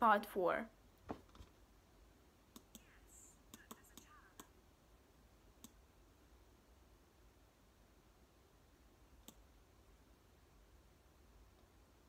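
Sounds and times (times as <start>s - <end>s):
faint short clicks: 3.5s - 4.5s.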